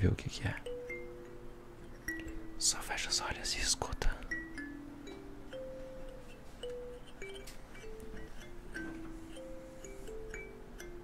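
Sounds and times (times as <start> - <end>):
soft whisper: 2.6 - 4.3.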